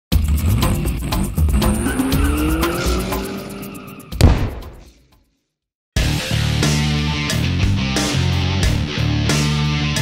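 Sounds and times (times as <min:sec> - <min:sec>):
car engine revving: 0:00.2 - 0:04.2
tires squealing: 0:01.3 - 0:04.2.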